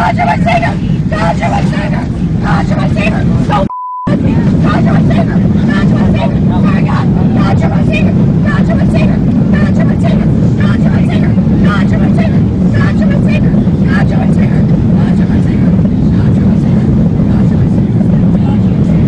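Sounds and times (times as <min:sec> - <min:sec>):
airliner cabin roar: 0:00.0 - 0:19.0
voices: 0:00.0 - 0:19.0.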